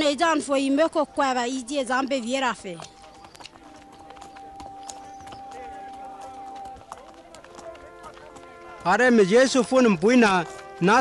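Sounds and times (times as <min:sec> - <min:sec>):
donkey hooves clip-clopping: 0:00.0 - 0:11.0
footsteps: 0:02.1 - 0:11.0.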